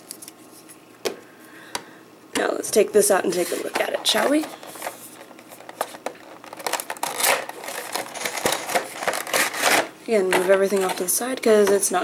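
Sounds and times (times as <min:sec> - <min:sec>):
plastic and cardboard crinkling: 0:03.3 - 0:12.0.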